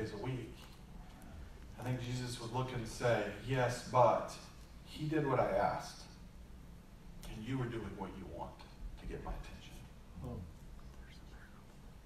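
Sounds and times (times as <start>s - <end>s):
faint low hum: 0.0s - 12.0s
soft breathing: 0.9s - 1.8s.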